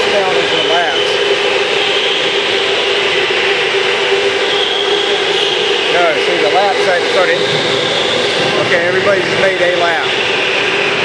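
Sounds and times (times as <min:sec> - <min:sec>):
electric go-kart motor whine: 0:00.0 - 0:11.0
higher motor whine: 0:00.0 - 0:11.0.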